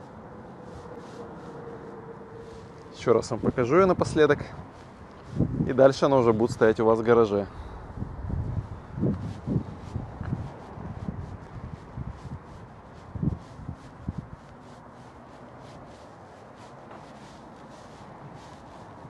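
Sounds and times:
footsteps on pavement: 0.0 - 6.5, 8.1 - 19.0
faint outdoor background: 0.0 - 19.0.

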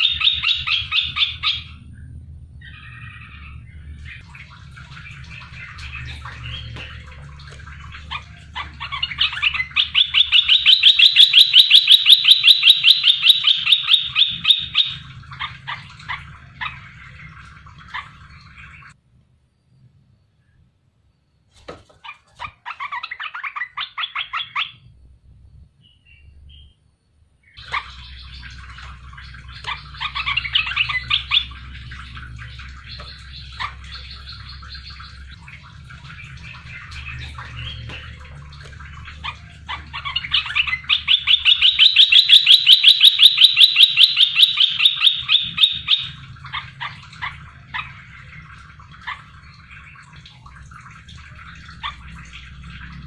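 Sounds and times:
faint low hum: 0.0 - 53.0
bird chattering trills: 7.8 - 18.2, 27.6 - 48.4.

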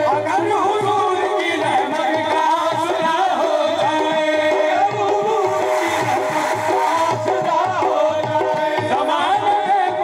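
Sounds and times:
man singing: 0.0 - 10.0
tabla rhythm: 0.0 - 10.0.

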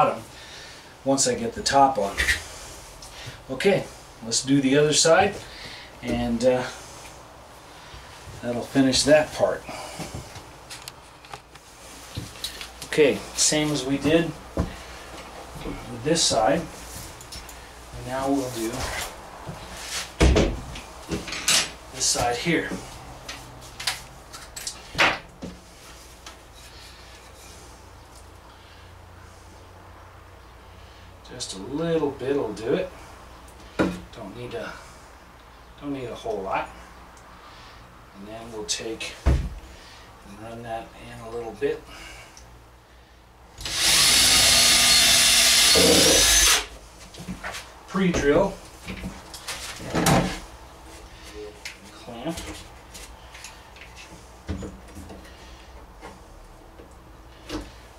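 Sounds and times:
cordless drill driving a screw: 43.6 - 46.7.

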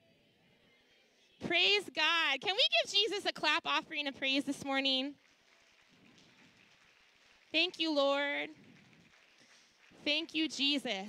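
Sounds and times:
congregation clapping: 4.2 - 11.0.

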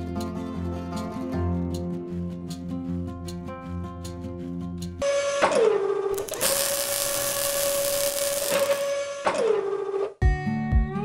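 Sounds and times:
loud machine hiss: 6.2 - 9.0
motor whine: 6.2 - 9.2.

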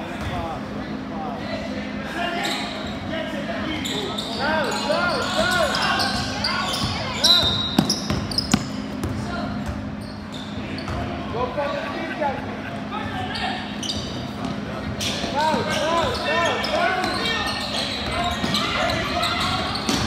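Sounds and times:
background voices in a hall: 0.0 - 20.0
shoe squeaks: 2.3 - 11.1, 13.2 - 20.0
basketball bouncing on plastic court: 6.2 - 9.9, 18.0 - 20.0.

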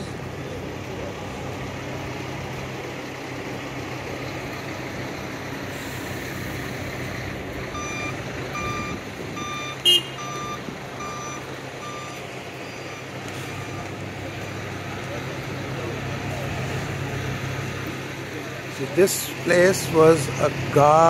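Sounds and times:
reversing alarm beeps: 7.7 - 13.9.

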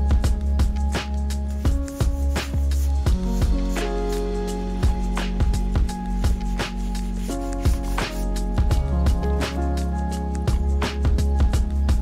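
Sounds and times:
music with steady beat and chords: 0.0 - 12.0.

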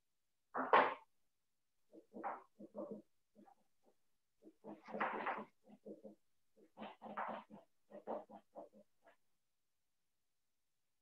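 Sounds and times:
marker squeaking on whiteboard: 4.4 - 9.2.

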